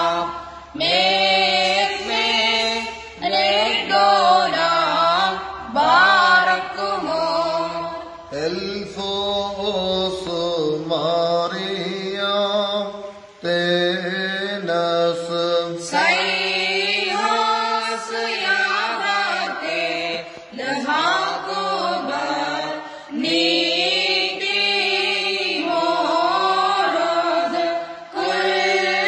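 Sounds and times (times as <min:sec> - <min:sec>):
man chanting unaccompanied: 0:07.2 - 0:15.9.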